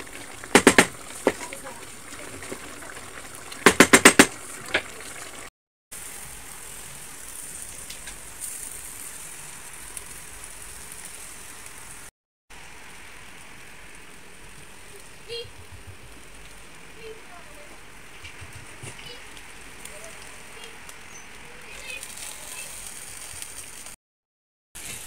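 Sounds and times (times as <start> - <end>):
food sizzling: 0.0 - 24.0, 24.8 - 25.0
wooden spoon knocking on pot: 0.5 - 1.5, 3.6 - 4.4.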